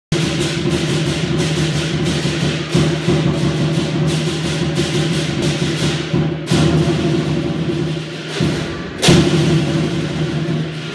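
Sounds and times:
cymbals clashing: 0:00.1 - 0:10.9
large drum beating: 0:00.1 - 0:10.9.

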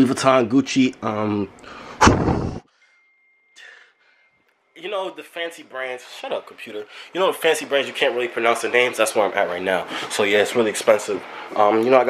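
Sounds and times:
thin high tone: 0:02.7 - 0:09.2.

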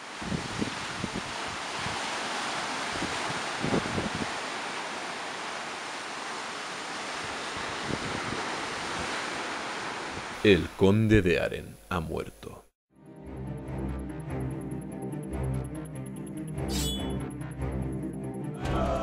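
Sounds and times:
wind on microphone: 0:00.0 - 0:02.2, 0:02.8 - 0:04.4, 0:07.2 - 0:09.3
surf breaking on shore: 0:00.0 - 0:10.5.

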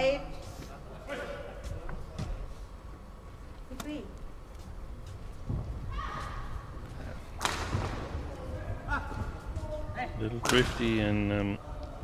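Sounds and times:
racket striking shuttlecock: 0:07.4 - 0:08.0.

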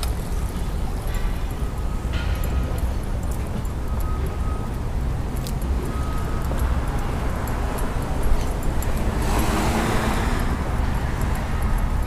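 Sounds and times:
car passing: 0:08.8 - 0:12.0.

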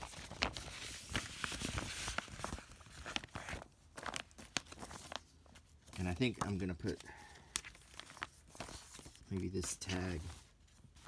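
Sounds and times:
paper and plastic sleeves rustling: 0:00.0 - 0:11.0.

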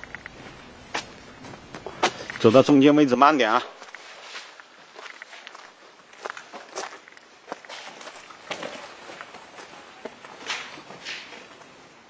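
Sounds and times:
slow footsteps outdoors: 0:00.0 - 0:12.0.

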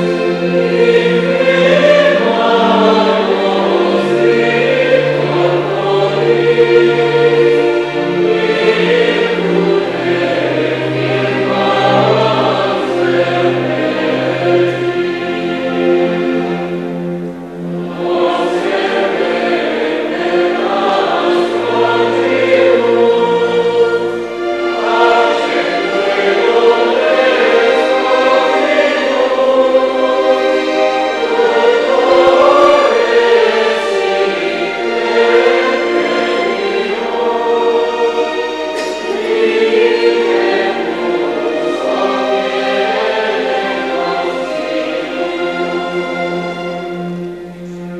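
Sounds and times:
choir singing sacred music: 0:00.0 - 0:47.9.

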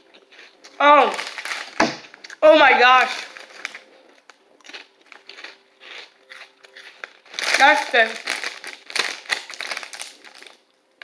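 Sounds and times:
plastic snack bag crinkling: 0:00.2 - 0:10.8.

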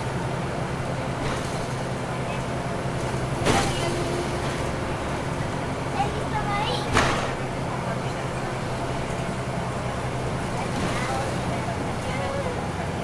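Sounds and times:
bus engine and road drone: 0:00.0 - 0:13.0.

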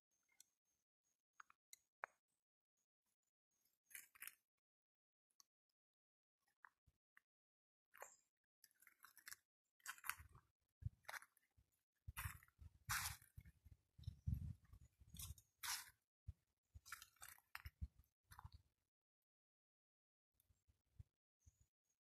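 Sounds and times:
footsteps crunching dry leaves: 0:12.2 - 0:13.3, 0:15.6 - 0:15.9.

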